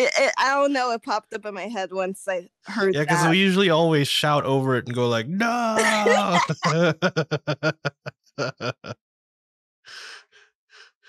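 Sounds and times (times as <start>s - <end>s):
person laughing: 2.8s - 8.9s.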